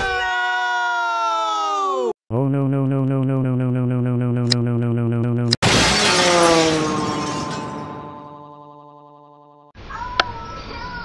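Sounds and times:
loud shattering crash: 5.6 - 8.5
droning electronic tone: 7.5 - 9.7.

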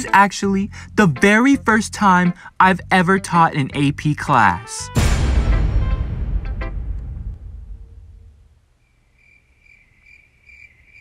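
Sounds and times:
low rumble: 5.0 - 8.7
crickets chirping: 8.8 - 11.0.

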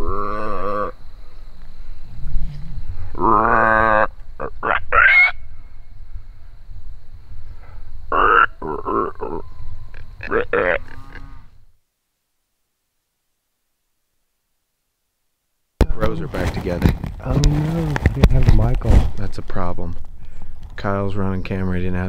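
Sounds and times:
low rumble of wind: 0.0 - 11.8, 15.9 - 22.0
mouth-blown game call: 3.1 - 5.4, 8.1 - 9.5, 10.2 - 11.4.

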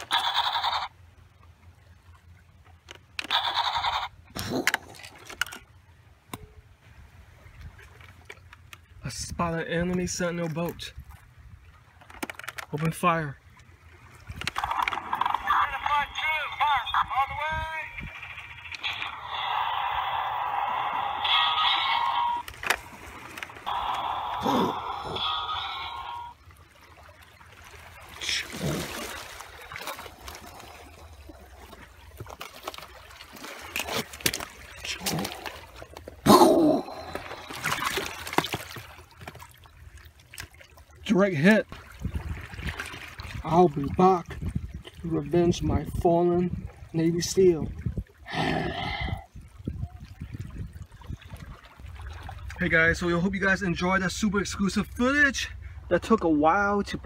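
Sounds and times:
water lapping on rocks: 0.0 - 53.2.

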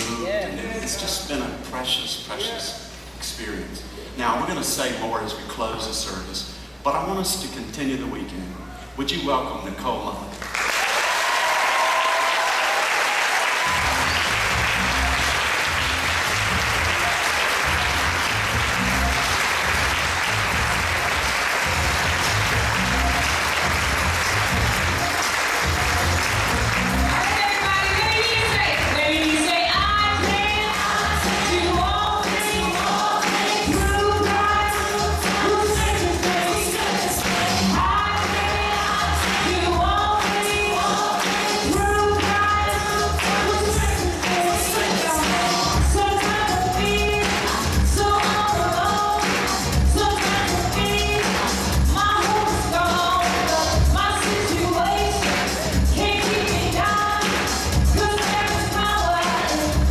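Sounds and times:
congregation applauding: 10.4 - 29.5, 36.2 - 42.4, 55.2 - 55.8
gospel band playing: 12.0 - 59.9
singing over band: 27.1 - 59.9.

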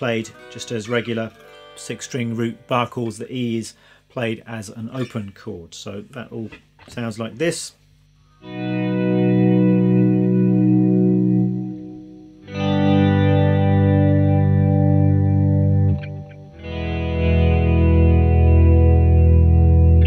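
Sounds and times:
electric guitar chord swells: 0.0 - 3.1, 8.4 - 20.0.

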